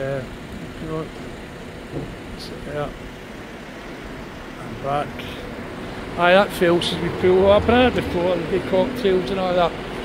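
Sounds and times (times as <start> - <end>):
city street traffic hum: 0.0 - 10.0.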